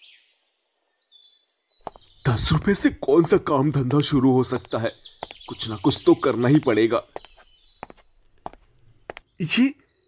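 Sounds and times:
soft footsteps: 1.8 - 9.3.

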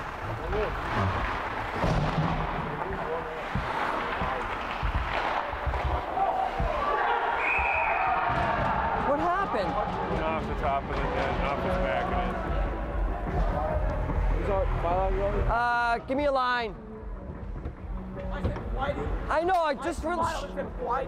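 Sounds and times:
sticks and puck knocking boards: 1.7 - 7.0
crowd voices: 2.4 - 16.0
referee's whistle: 7.4 - 8.2.

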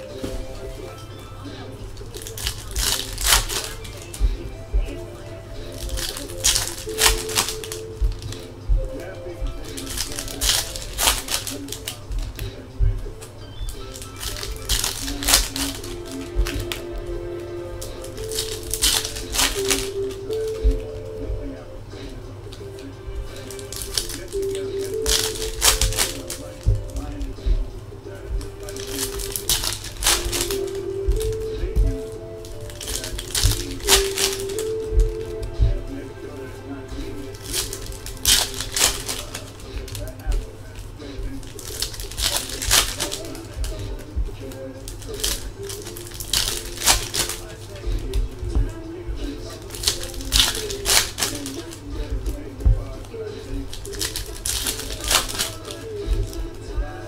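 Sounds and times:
background music: 0.0 - 57.0
faint speech: 0.0 - 57.0
foil wrappers crinkling and tearing: 0.0 - 57.0.

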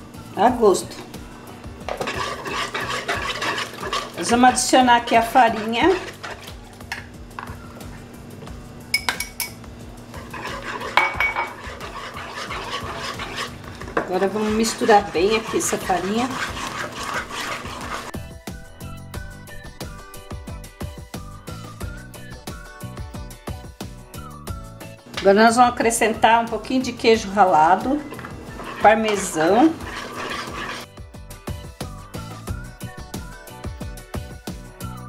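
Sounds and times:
soft background music: 0.0 - 35.0
whisk clicking against bowl: 1.9 - 6.6, 10.2 - 18.1, 27.7 - 30.9.

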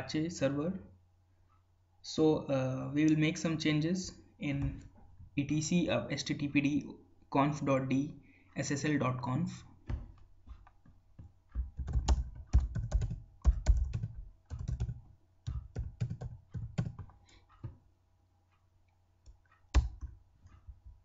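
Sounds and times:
computer keyboard typing: 9.9 - 17.8, 19.5 - 20.6.

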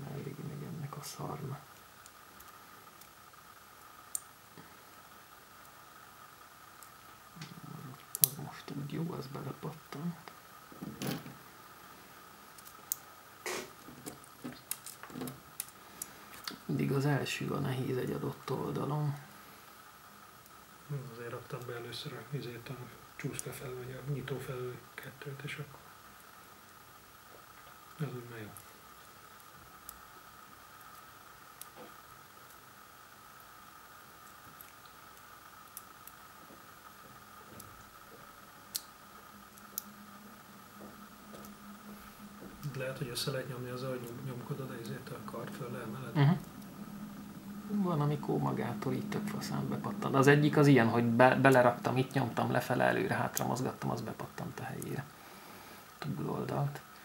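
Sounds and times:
faint steady hum: 0.0 - 57.0.

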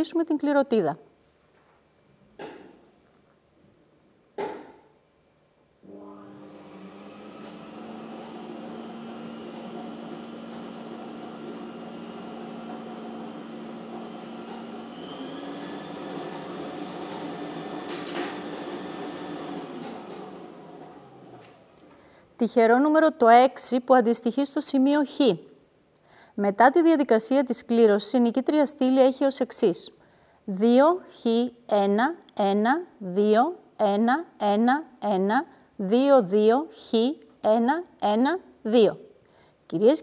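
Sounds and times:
lottery machine motor humming: 5.9 - 21.8.

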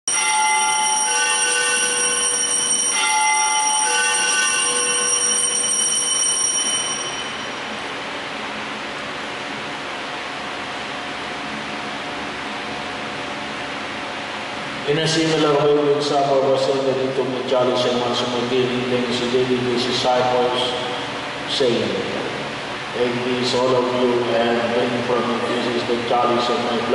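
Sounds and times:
small bells ringing: 0.1 - 7.7
room noise hiss: 0.1 - 26.9.

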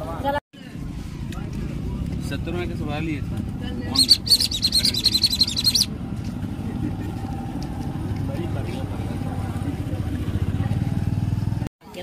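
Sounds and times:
low motor rumble: 0.7 - 11.7.

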